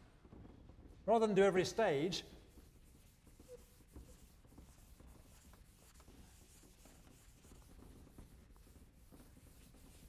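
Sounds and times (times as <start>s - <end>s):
chalkboard eraser rubbing: 2.2s - 10.0s.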